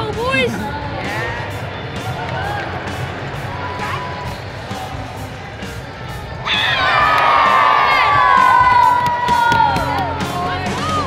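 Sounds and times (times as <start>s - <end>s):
music: 0.0s - 11.0s
crowd cheering and whooping: 6.4s - 11.0s.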